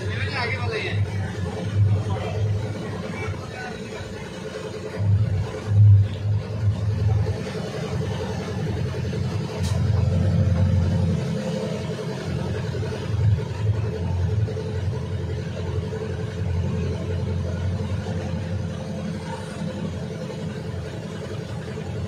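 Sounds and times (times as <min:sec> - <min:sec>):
vehicle engine running: 0:00.0 - 0:22.0.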